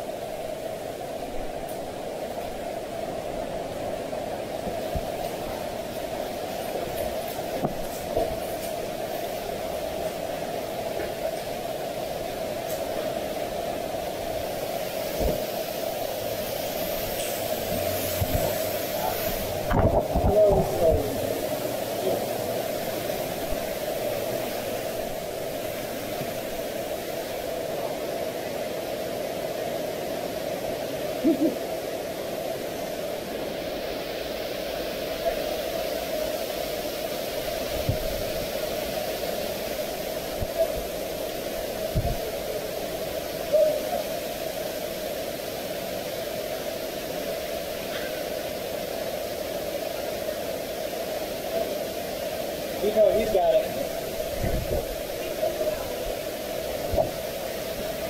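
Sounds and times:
stream rushing over rocks: 0.0s - 58.0s.

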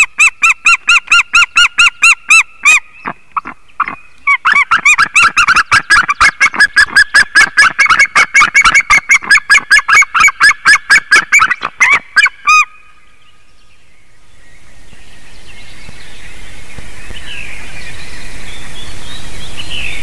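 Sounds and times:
eagles yelping calls: 0.0s - 12.8s.

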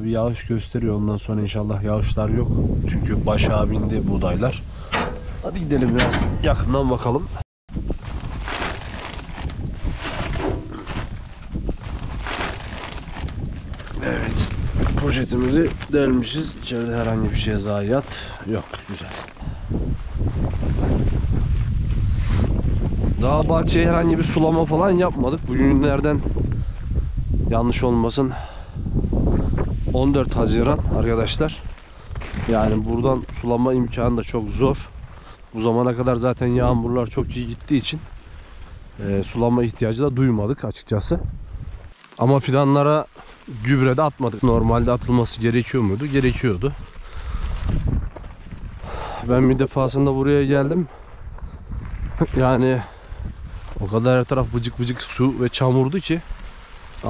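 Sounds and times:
wind buffeting microphone: 0.0s - 41.9s, 42.9s - 57.0s
rustling footsteps in tall grass: 7.8s - 27.2s, 29.7s - 40.0s, 41.2s - 49.1s, 49.8s - 57.0s.

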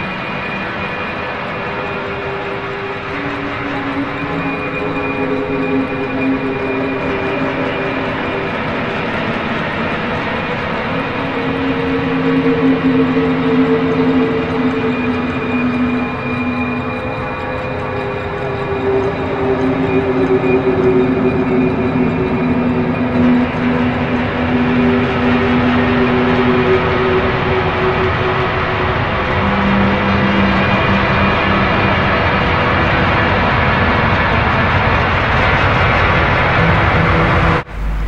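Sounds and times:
eerie ambient music: 0.0s - 38.0s.

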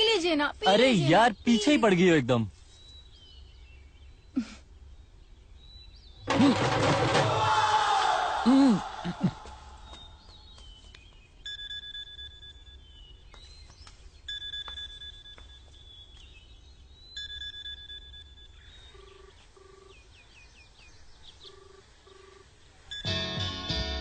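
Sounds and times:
short beeps in pairs: 11.4s - 13.2s, 14.3s - 15.9s, 17.1s - 19.9s, 22.2s - 23.5s
telephone ringing: 17.2s - 20.0s, 21.4s - 23.8s.

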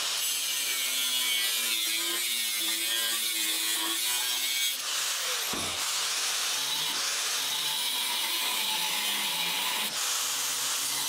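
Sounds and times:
angle grinder cutting steel: 0.0s - 11.0s.

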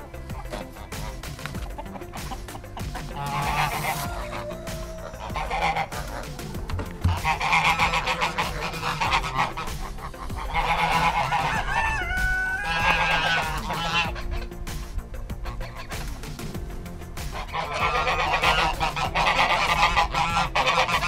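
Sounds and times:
geese honking: 0.0s - 21.0s.

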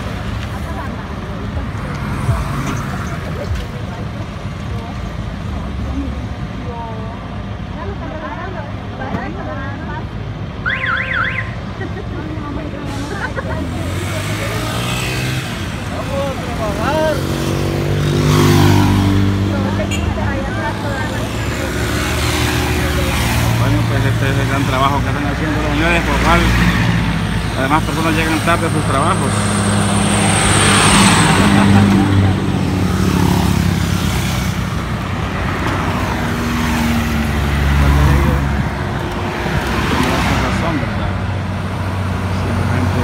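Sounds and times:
roadside traffic noise: 0.0s - 43.0s
engine revving and moving off: 12.6s - 43.0s.

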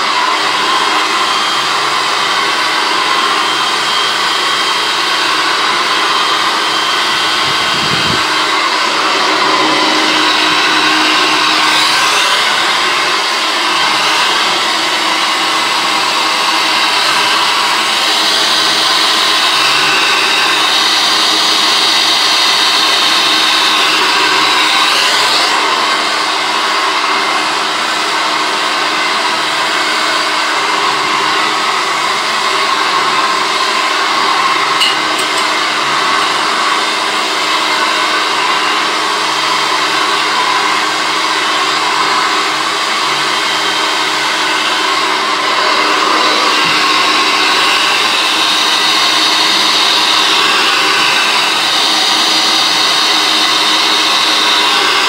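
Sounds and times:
hair dryer running: 0.0s - 55.0s.

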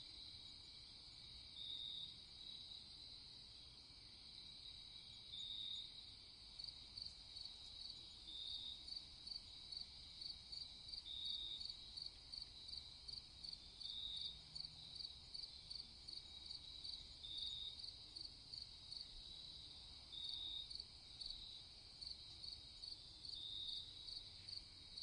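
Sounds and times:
crickets chirping: 0.0s - 25.0s
longer lower insect trill: 4.4s - 25.0s.

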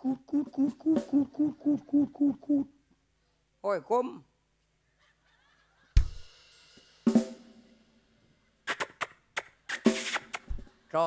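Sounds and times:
drum and cymbal hit: 6.0s - 7.9s.

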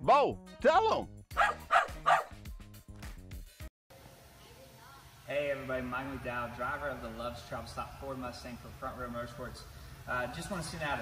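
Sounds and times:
small dog barking: 1.3s - 2.4s.

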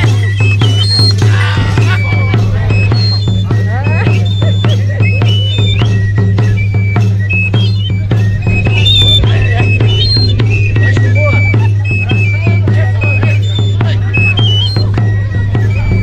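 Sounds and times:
high piping melody: 0.0s - 16.0s
large drum beaten in quick beat: 0.0s - 16.0s.

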